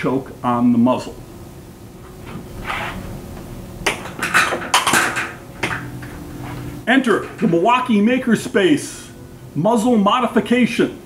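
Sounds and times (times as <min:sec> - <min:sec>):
plastic pipe knocking and clattering: 0:03.9 - 0:06.1.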